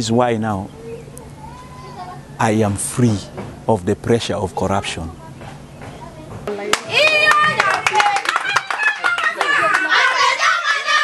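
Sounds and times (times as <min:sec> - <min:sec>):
rapid hand clapping: 0:06.7 - 0:10.0
women singing: 0:09.2 - 0:11.0.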